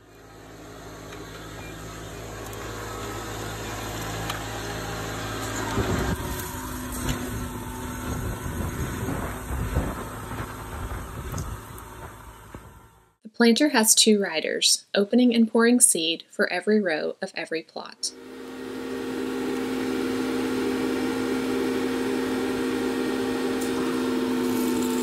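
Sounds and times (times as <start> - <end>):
tractor engine hum: 0.0 - 13.2, 17.8 - 25.0
planter knocking and rattling: 23.4 - 25.0.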